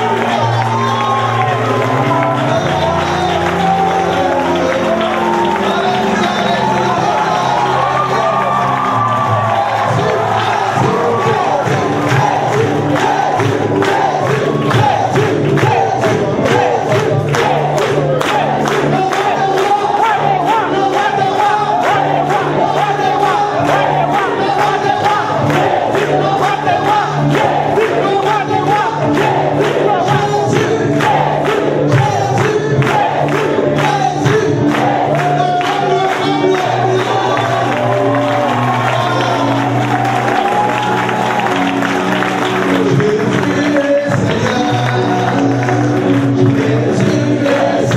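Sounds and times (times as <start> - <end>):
congregation singing: 0.0 - 47.9
live band music: 0.0 - 47.9
steady beat: 10.1 - 36.9.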